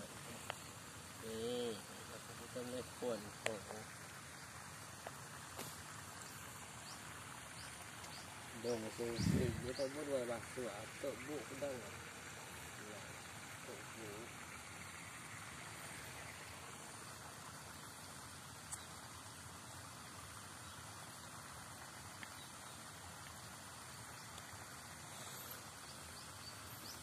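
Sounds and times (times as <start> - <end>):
faint outdoor background noise: 0.0 - 27.0
faint voice: 1.2 - 3.6
small click: 18.7 - 18.9.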